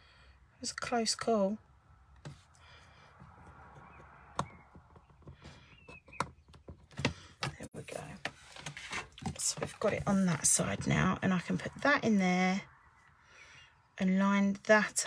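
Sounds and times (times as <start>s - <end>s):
paper scraping and rustling: 7.7s - 11.0s.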